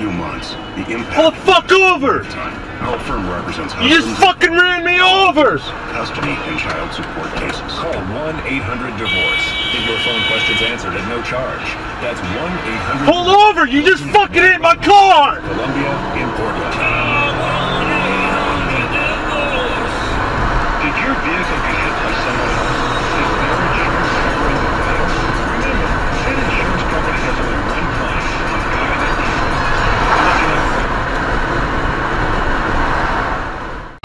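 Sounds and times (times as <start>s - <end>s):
indistinct voices: 0.0s - 31.6s
road and engine noise: 0.0s - 34.0s.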